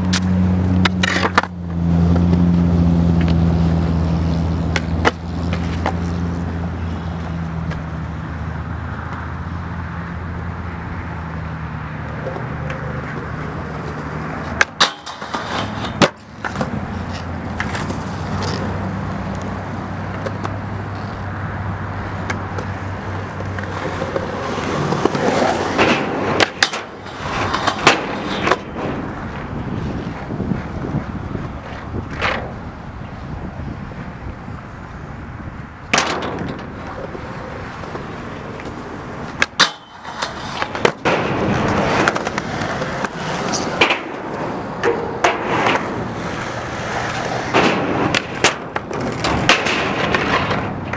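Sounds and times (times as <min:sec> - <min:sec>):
skateboard clacks: 0:00.0 - 0:02.5, 0:03.1 - 0:09.3, 0:12.0 - 0:50.9
skateboard wheels rolling on concrete: 0:00.0 - 0:50.9.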